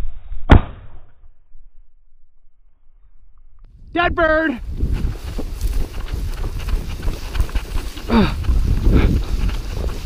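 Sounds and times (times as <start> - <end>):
wind buffeting microphone: 3.7 - 10.0
footsteps through dry grass: 4.2 - 10.0.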